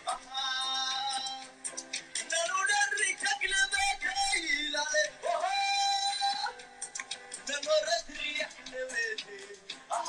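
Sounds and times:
song with singing voice: 0.0 - 10.0.

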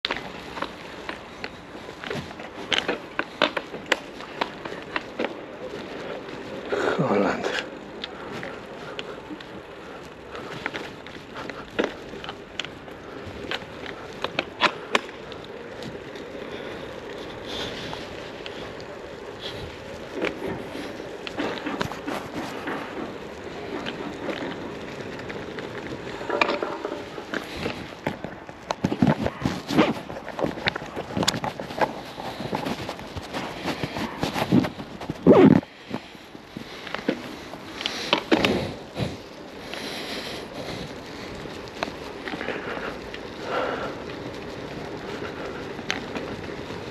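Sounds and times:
bicycle tyres on wet pavement: 0.0 - 46.9.

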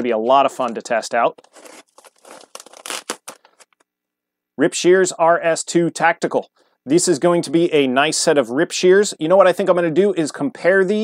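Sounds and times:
plastic packaging crinkling: 1.4 - 3.8.

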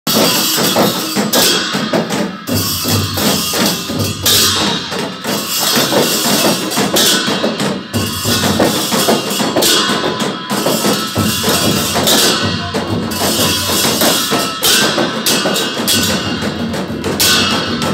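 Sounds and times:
barrel drums beaten in driving rhythm: 0.1 - 17.9
hand cymbals clashing: 0.1 - 17.9.

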